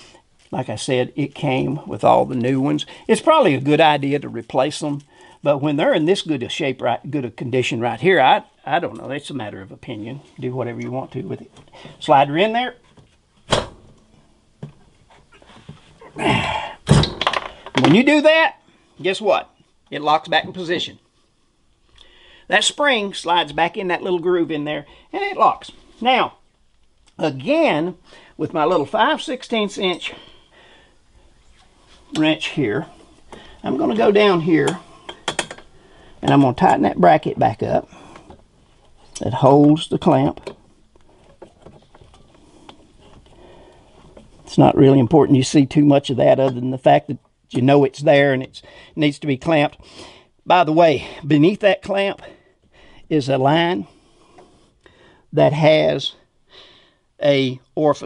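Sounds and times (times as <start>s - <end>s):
faint handling sounds: 0.0s - 6.7s, 17.4s - 44.8s.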